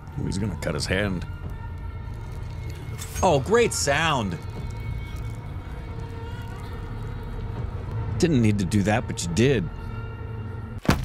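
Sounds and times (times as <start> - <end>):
low steady drone: 0.0 - 10.8.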